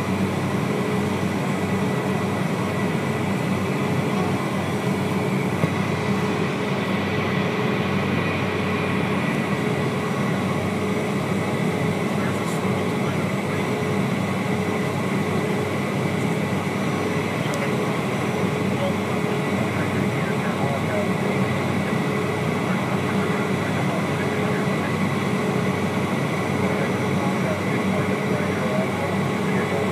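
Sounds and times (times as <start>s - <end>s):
jet cabin engine and air rush: 0.0s - 29.9s.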